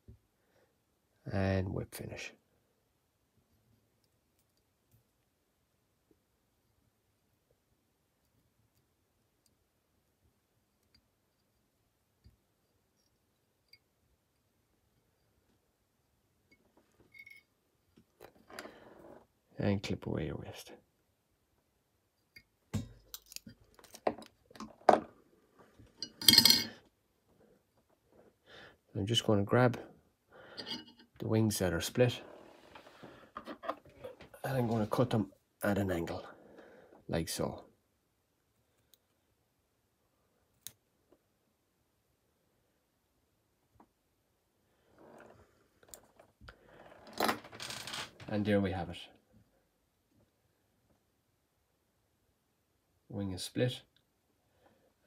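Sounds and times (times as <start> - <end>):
metal tools clinking: 26.0 - 26.8, 30.6 - 31.0
metal tools rattling: 26.0 - 26.8.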